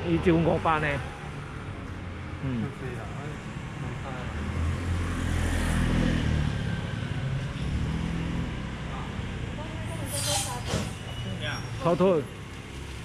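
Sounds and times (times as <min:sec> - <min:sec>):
voices: 0:08.8 - 0:12.3.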